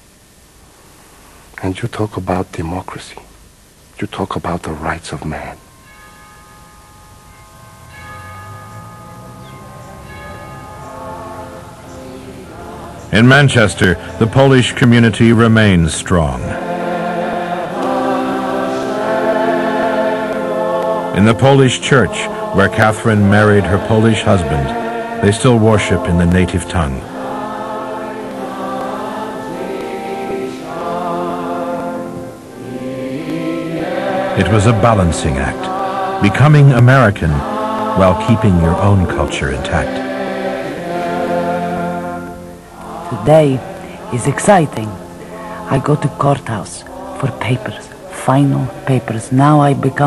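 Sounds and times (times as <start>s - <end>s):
church bells ringing: 5.1s - 15.8s, 17.8s - 30.9s
congregation singing a hymn: 7.3s - 50.0s.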